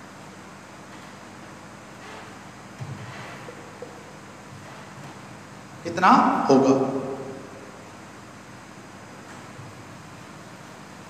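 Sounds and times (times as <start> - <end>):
steady background hiss: 0.0 - 11.0
man speaking: 5.8 - 7.6.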